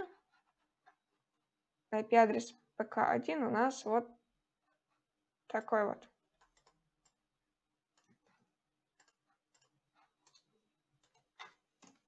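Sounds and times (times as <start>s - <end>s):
computer keyboard and mouse clicks: 6.4s - 7.2s, 9.0s - 12.0s.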